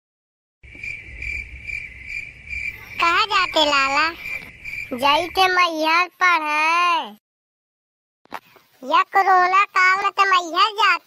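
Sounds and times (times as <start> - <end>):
crickets chirping: 0.6 - 5.9.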